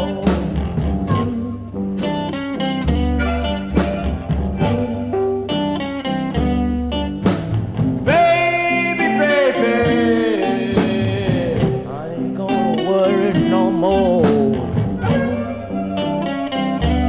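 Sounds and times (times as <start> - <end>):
blues band playing: 0.0 - 17.0
plucked guitar notes: 0.0 - 17.0
bending lead note: 2.8 - 7.0, 8.0 - 17.0.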